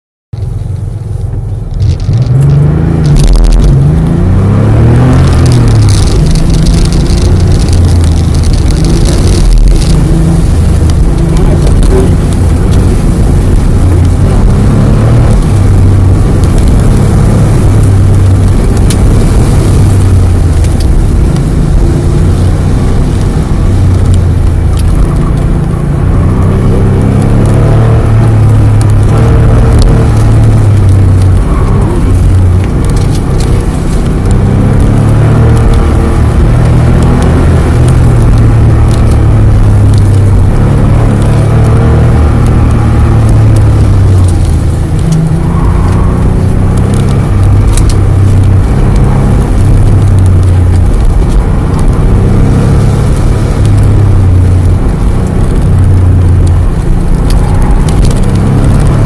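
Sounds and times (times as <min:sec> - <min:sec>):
car engine revving: 0:00.4 - 0:59.0.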